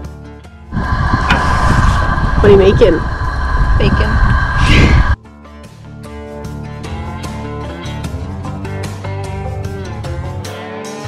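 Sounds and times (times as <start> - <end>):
steady high hum: 0.7 - 5.2
wind rumble on microphone: 0.7 - 5.2.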